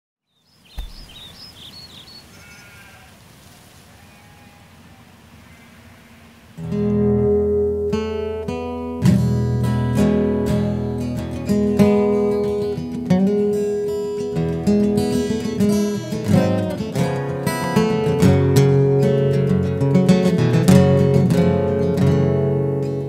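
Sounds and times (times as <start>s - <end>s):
soft thump: 0.7s - 1.4s
faint short animal calls: 0.7s - 6.6s
acoustic guitar strumming chords: 6.6s - 23.0s.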